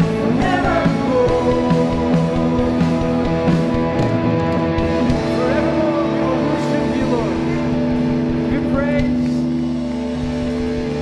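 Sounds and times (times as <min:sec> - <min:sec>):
live rock band chord: 0:00.0 - 0:11.0
person's voice: 0:05.0 - 0:07.8, 0:08.4 - 0:09.5.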